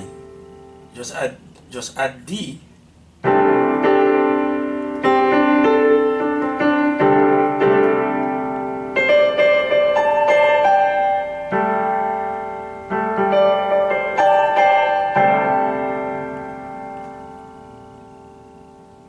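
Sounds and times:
electronic keyboard piano chords: 0:00.0 - 0:01.0, 0:03.2 - 0:19.0.

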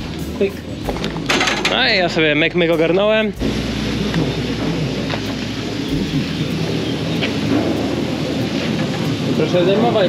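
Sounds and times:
chairlift machinery rumbling: 0:00.0 - 0:10.0.

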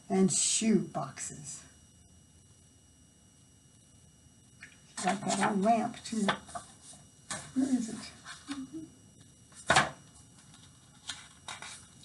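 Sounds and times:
book page turning: 0:05.0 - 0:05.7, 0:09.6 - 0:12.0.

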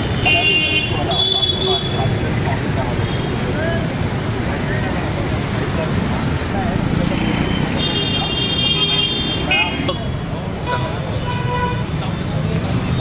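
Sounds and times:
road traffic noise: 0:00.0 - 0:13.0
vehicle horn: 0:00.2 - 0:01.9
people talking: 0:00.2 - 0:10.2.

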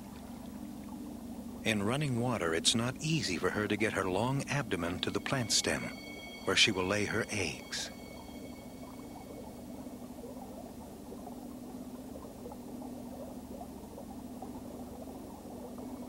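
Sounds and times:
steady low hum: 0:00.0 - 0:16.0
stream water burbling: 0:00.0 - 0:16.0.

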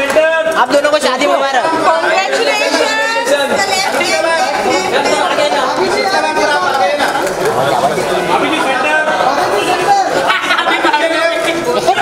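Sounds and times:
crowd chatter and calling out: 0:00.0 - 0:12.0.

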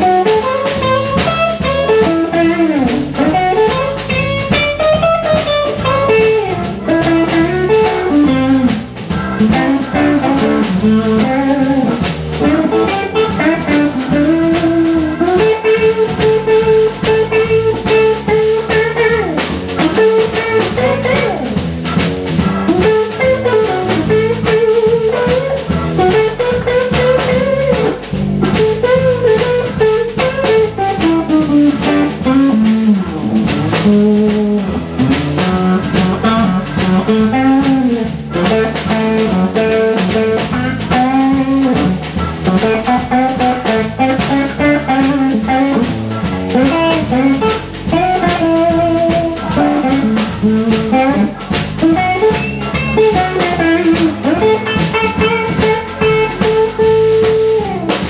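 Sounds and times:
bass guitar: 0:00.0 - 0:58.0
drum kit: 0:00.0 - 0:58.0
electric guitar lead line: 0:00.0 - 0:58.0
keyboard: 0:00.0 - 0:58.0.

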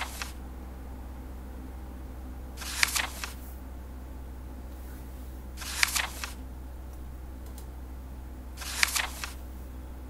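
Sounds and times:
paper page turn swish: 0:00.0 - 0:00.4, 0:02.6 - 0:03.4, 0:05.6 - 0:06.4, 0:08.6 - 0:09.4.

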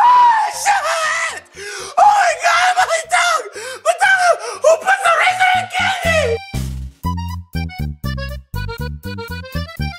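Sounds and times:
person screaming: 0:00.0 - 0:06.4.

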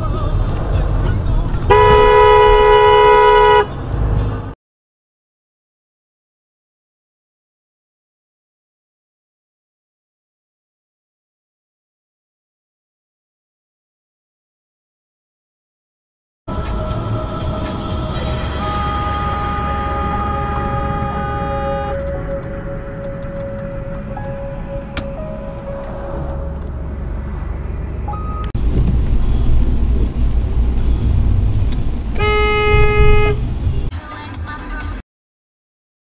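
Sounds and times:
car driving rumble: 0:00.0 - 0:04.6, 0:16.5 - 0:34.9
car horn: 0:01.6 - 0:03.8, 0:16.5 - 0:27.4, 0:32.1 - 0:33.8
background music: 0:16.5 - 0:28.6, 0:33.9 - 0:35.0.

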